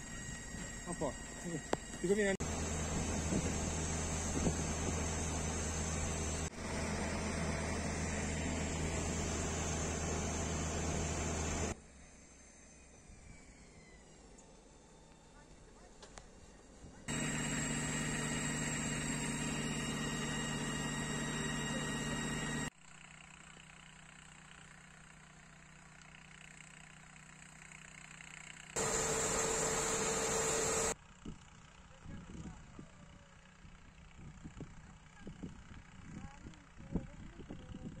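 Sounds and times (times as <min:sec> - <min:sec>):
engine hum: 0:01.7 - 0:11.8, 0:17.1 - 0:22.7, 0:28.4 - 0:31.0.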